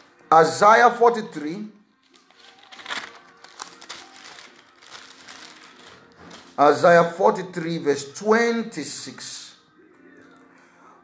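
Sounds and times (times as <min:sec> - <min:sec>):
thin pages turning: 0:02.0 - 0:06.8.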